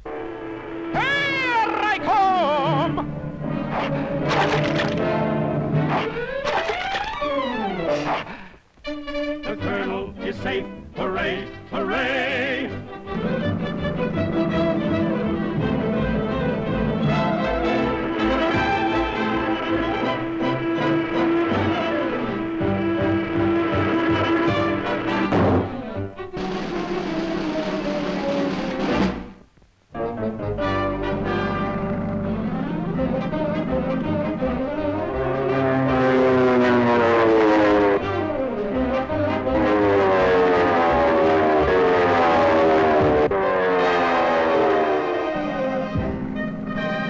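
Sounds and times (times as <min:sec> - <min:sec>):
brass: 0:00.0 - 0:08.3, 0:08.9 - 0:47.0
orchestral cartoon chase music: 0:00.8 - 0:29.4, 0:30.0 - 0:47.0
timpani: 0:02.9 - 0:08.4, 0:12.6 - 0:29.4, 0:30.0 - 0:47.0.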